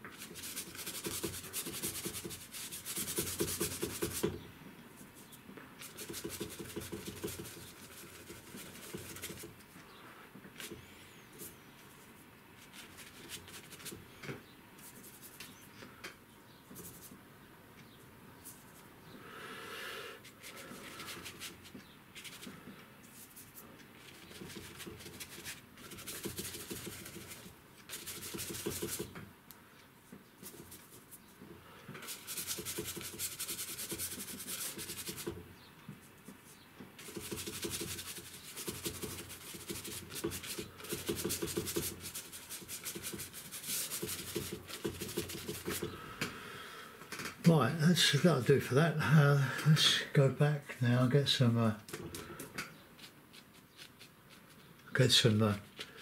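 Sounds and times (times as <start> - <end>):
brush scrubbing paper: 0.0 - 4.3, 5.0 - 9.6, 12.6 - 14.0, 20.2 - 29.1, 30.4 - 31.3, 32.0 - 35.4, 37.0 - 45.9, 53.0 - 55.9.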